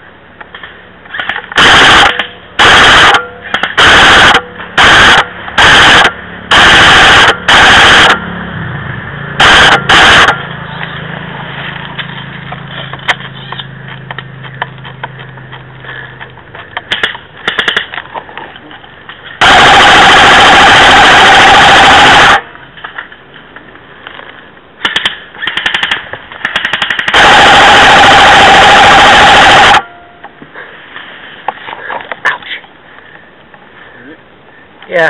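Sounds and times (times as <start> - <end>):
airsoft rifle full-auto bursts: 1.2 - 8.2, 9.4 - 10.4, 16.9 - 17.9, 19.4 - 22.4, 24.8 - 29.9
mechanical whine: 19.4 - 22.7
rapid sharp clicks: 24.8 - 29.8.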